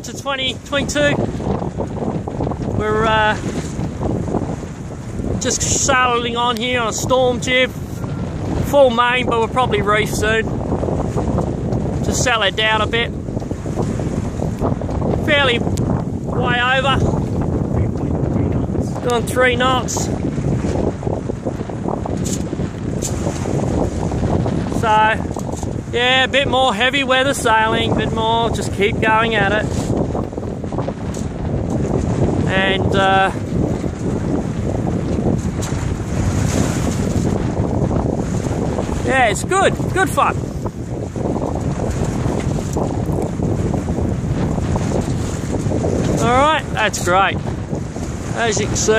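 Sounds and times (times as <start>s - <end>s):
water rushing along hull: 0.0s - 48.9s
wind buffeting microphone: 0.0s - 48.9s.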